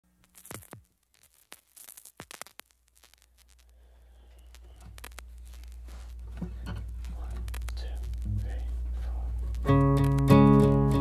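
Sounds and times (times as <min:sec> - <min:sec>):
clicks and crinkly scratches: 0:00.2 - 0:03.7, 0:04.3 - 0:10.8
low hum: 0:03.0 - 0:11.0.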